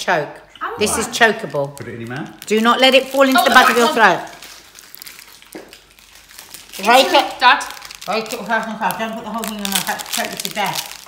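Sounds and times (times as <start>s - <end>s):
person speaking: 0.6s - 2.4s
packaging crinkling: 1.4s - 11.0s.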